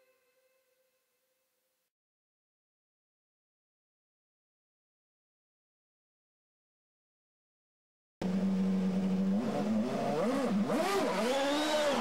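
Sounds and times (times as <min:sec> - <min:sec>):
engine-like buzzing tone: 0:08.2 - 0:12.0.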